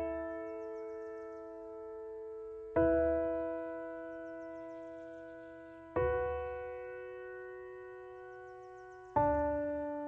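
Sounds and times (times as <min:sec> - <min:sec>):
held piano chord: 0:00.0 - 0:10.0.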